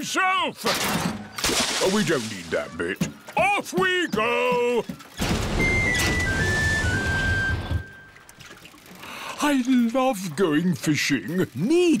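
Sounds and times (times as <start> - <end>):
rushing water: 1.4 - 2.9.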